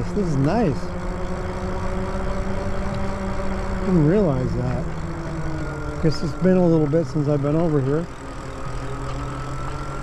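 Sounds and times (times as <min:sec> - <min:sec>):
electric bike motor hum: 0:00.0 - 0:10.0
tyres rumbling on asphalt: 0:00.0 - 0:10.0.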